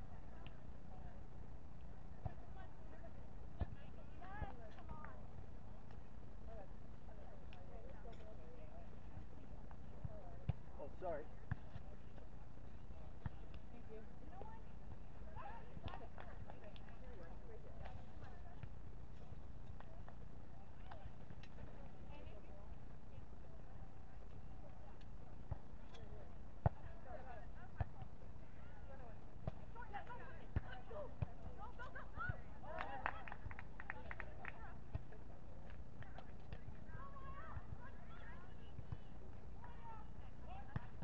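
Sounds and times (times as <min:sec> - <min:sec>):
faint distant voices: 0:00.0 - 0:41.0.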